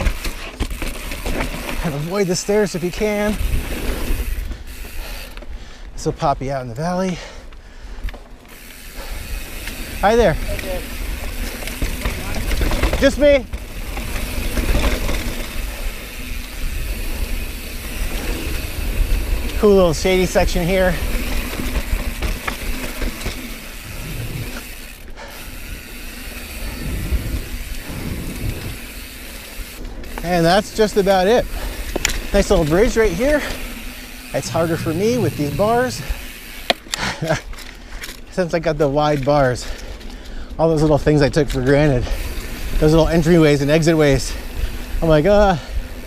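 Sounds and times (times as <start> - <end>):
bike rattling and ratcheting: 0.0 - 46.0
bike tyres on dirt: 0.0 - 46.0
wind rumbling on microphone: 9.4 - 22.5, 23.8 - 24.6, 25.8 - 30.2, 34.3 - 36.2
wind rumble on microphone: 26.6 - 28.9.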